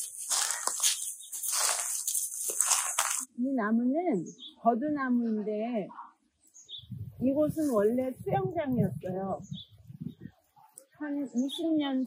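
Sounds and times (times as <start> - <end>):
footsteps crunching dry leaves: 0.0 - 3.3.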